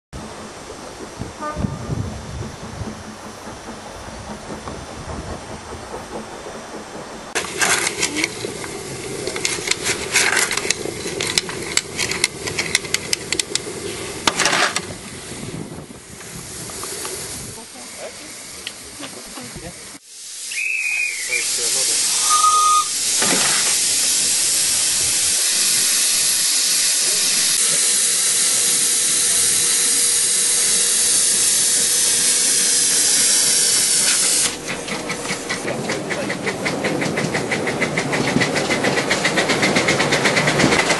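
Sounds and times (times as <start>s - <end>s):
miniature train rumbling on track: 0.1s - 40.9s
steam hissing: 0.2s - 40.9s
steam whistle notes: 1.4s - 2.1s, 20.4s - 23.1s.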